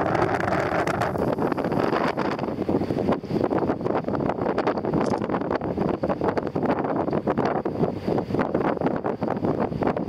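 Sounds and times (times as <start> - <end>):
boat engine humming: 0.0 - 10.0
wind buffeting microphone: 0.0 - 10.0.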